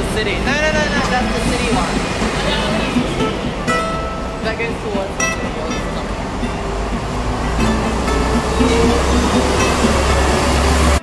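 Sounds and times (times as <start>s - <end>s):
loud roar with deep rumble: 6.1s - 11.0s.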